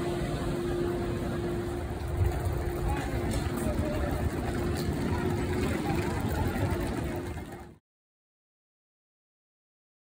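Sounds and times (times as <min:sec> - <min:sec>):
heavy low rumble: 0:00.0 - 0:07.8
steady hum: 0:00.0 - 0:07.8.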